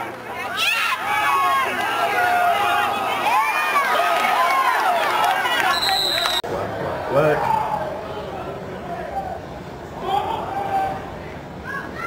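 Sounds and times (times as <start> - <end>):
crowd yelling and cheering: 0.0 - 12.0
referee's whistle: 5.7 - 6.4.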